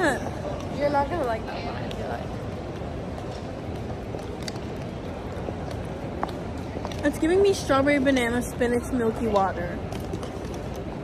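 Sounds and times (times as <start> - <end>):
hum of large hall: 0.0 - 11.0.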